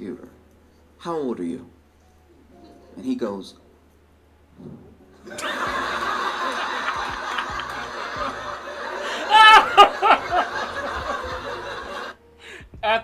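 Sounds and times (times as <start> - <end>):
audience laughing: 5.3 - 12.2
man laughing loudly: 5.4 - 12.1.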